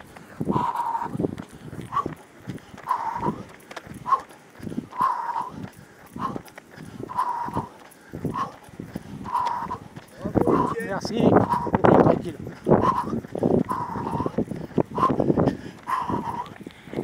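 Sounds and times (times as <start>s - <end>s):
heavy breathing with whistle: 0.0s - 11.9s, 12.5s - 17.0s.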